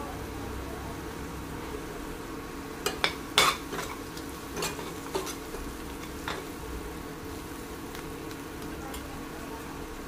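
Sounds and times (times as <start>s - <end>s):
faint steady sizzle: 0.0s - 10.0s.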